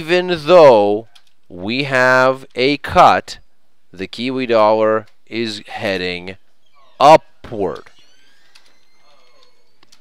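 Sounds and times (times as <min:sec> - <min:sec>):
low steady background hiss: 0:00.0 - 0:07.8.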